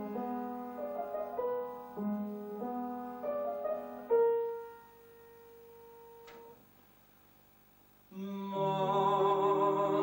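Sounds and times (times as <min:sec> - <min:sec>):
piano chord ringing: 0:00.0 - 0:06.6
faint click: 0:06.2 - 0:06.6.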